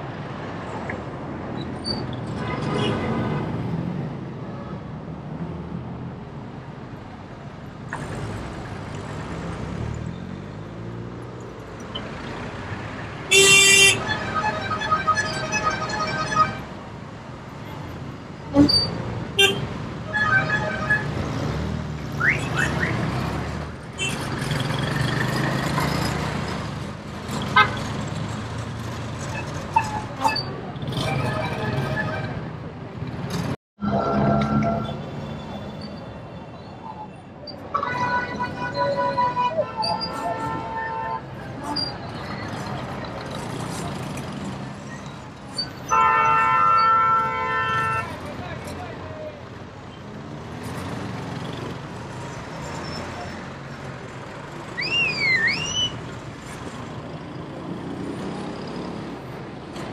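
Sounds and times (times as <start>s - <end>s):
city street traffic: 0.0s - 59.9s
car horns honking: 13.3s - 16.7s, 18.6s - 21.2s, 37.7s - 41.4s, 45.9s - 48.2s.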